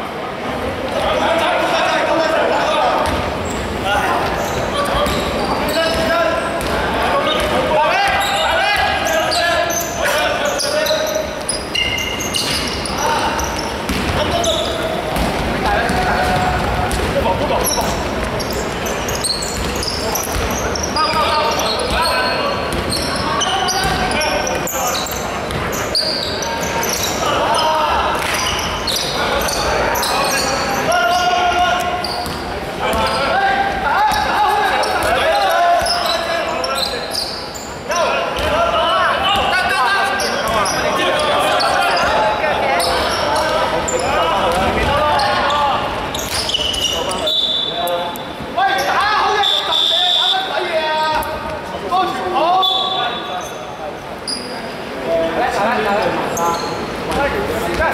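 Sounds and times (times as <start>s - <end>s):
players calling out: 0.9s - 55.0s.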